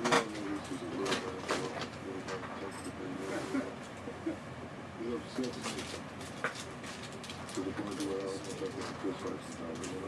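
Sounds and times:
muffled background speech: 0:00.0 - 0:06.8, 0:07.5 - 0:10.0.

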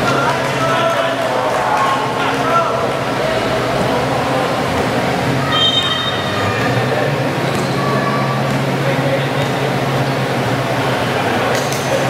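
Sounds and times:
basketball game crowd and court noise: 0:00.0 - 0:12.0
high whistle-like tone: 0:05.5 - 0:06.3.

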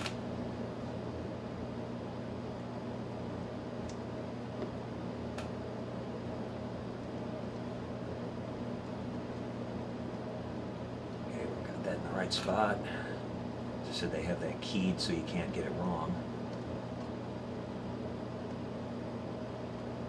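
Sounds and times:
low fan hum with hiss: 0:00.0 - 0:20.0.

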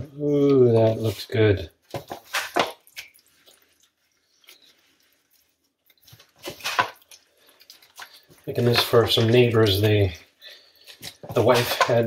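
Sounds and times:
wet squishing and tearing of meat: 0:01.8 - 0:12.0.

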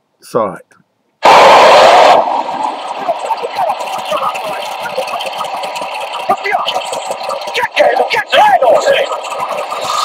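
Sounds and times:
faint voices: 0:02.6 - 0:10.0.

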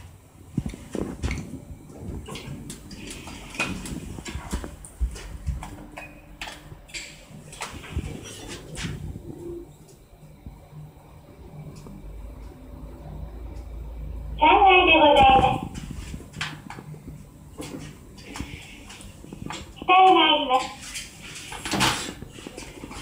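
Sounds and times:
elevator low hum: 0:00.0 - 0:23.0.

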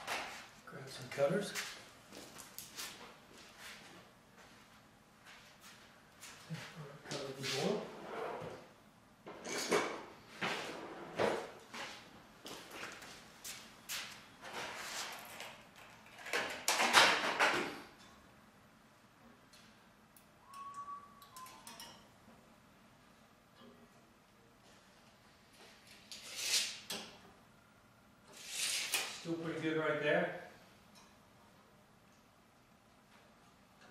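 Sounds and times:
brief squeak: 0:20.5 - 0:21.8.

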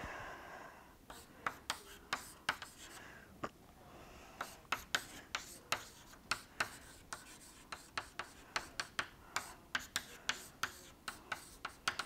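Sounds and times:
pen writing strokes and taps: 0:01.1 - 0:02.9, 0:04.4 - 0:12.0.

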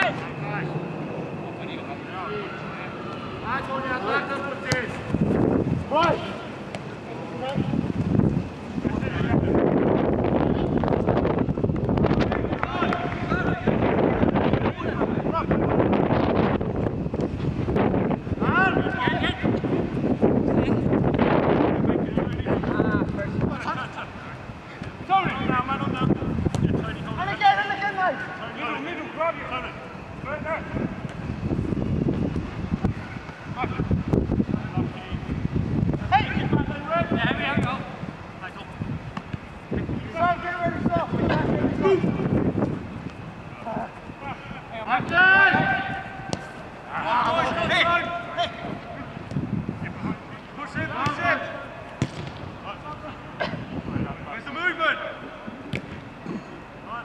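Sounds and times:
wind buffeting microphone: 0:05.0 - 0:06.4, 0:07.5 - 0:27.4, 0:30.0 - 0:46.4, 0:48.6 - 0:51.0
distant shouts of players: 0:12.2 - 0:15.7, 0:43.4 - 0:55.4.

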